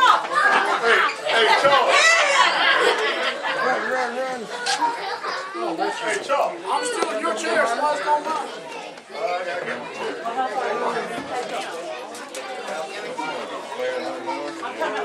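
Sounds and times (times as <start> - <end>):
crowd chattering: 0.0 - 15.0.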